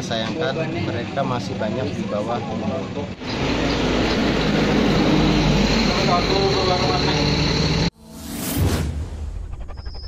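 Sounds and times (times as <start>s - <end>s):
indistinct voices: 0.6s - 7.9s.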